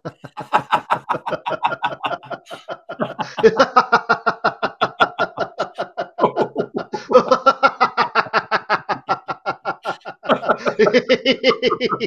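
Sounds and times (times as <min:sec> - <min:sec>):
men laughing heartily: 0:00.0 - 0:12.0.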